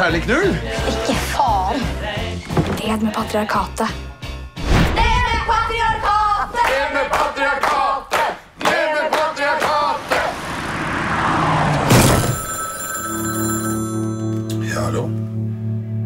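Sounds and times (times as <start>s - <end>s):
trailer music with sharp hits: 4.5s - 6.6s
whoosh: 9.7s - 12.5s
high bell-like ringing: 12.0s - 15.0s.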